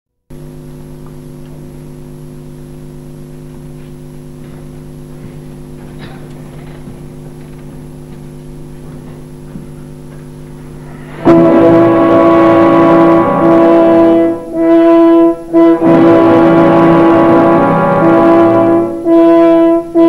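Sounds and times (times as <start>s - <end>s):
low electrical hum with whine: 0.3s - 20.0s
faint clicks and rustles: 3.8s - 10.7s.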